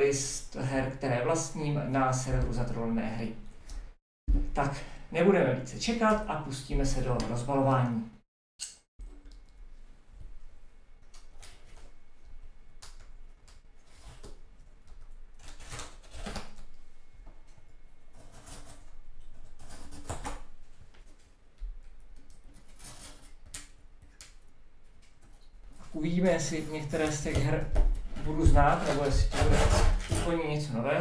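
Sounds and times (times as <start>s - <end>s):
packing tape tearing: 15.3s - 16.8s
cardboard rubbing and rustling: 25.6s - 30.5s.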